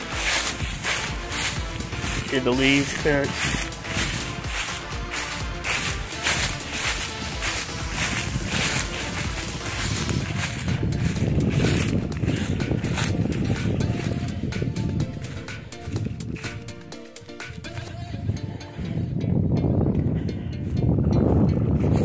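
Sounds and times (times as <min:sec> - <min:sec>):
wind rumbling on microphone: 0:00.0 - 0:16.7, 0:17.5 - 0:22.0
footsteps crunching through dry leaves: 0:00.0 - 0:16.8
background music: 0:00.0 - 0:22.0.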